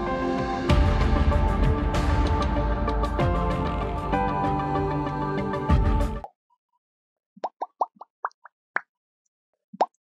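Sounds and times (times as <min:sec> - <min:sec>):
short bubbly pops: 0:07.4 - 0:08.9.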